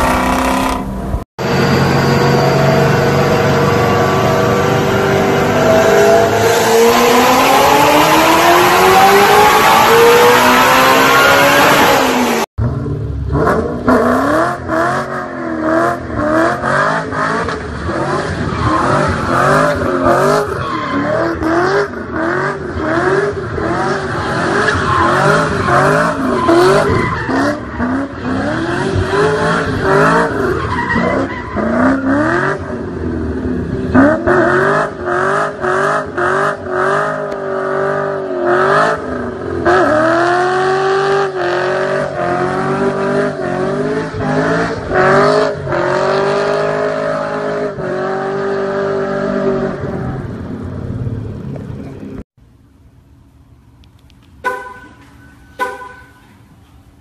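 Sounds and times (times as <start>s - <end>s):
car engine revving: 0.0s - 52.2s.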